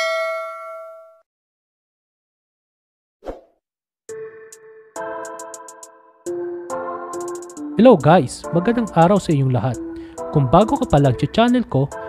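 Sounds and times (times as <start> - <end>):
held synth chord: 4.1 - 7.8
even ticking beat: 7.2 - 9.9, 10.5 - 11.7.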